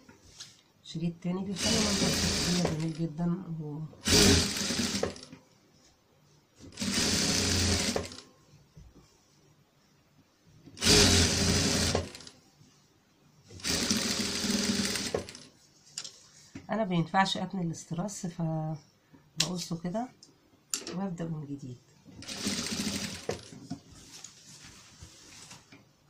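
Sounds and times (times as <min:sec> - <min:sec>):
electric sewing machine stitching: 0:01.5 - 0:03.0, 0:04.0 - 0:05.3, 0:06.8 - 0:08.2, 0:10.8 - 0:12.3, 0:13.6 - 0:15.5, 0:22.2 - 0:23.5.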